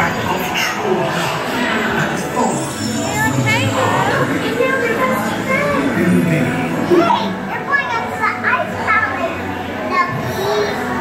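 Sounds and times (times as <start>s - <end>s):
children talking and calling out: 0.0s - 11.0s
faint background music: 0.0s - 11.0s.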